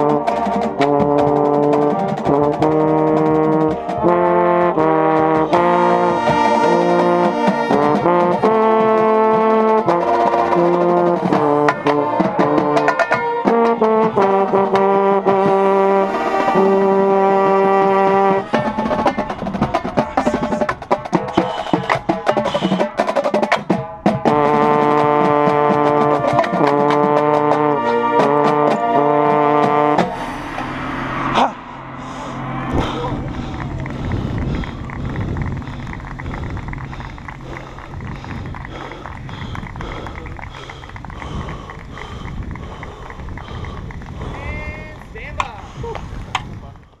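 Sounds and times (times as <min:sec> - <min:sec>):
brass section playing chords: 0:00.0 - 0:40.9
people chattering: 0:31.4 - 0:37.3.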